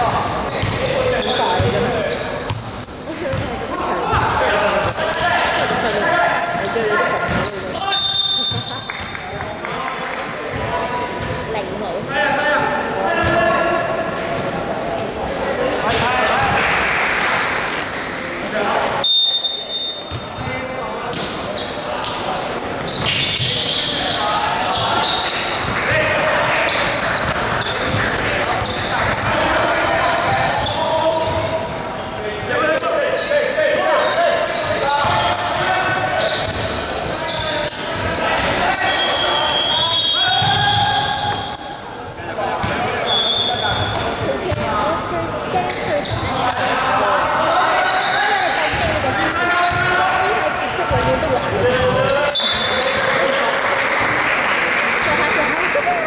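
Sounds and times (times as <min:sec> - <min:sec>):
basketball bouncing on wooden court: 0:00.5 - 0:05.0, 0:07.2 - 0:07.6, 0:26.7 - 0:29.5, 0:40.3 - 0:41.4, 0:42.6 - 0:42.8, 0:43.7 - 0:44.9, 0:49.7 - 0:52.1
players calling out: 0:21.4 - 0:53.9.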